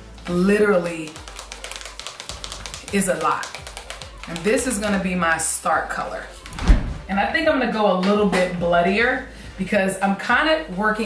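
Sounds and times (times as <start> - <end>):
brush tapping a mixing bowl: 0.1 - 5.4.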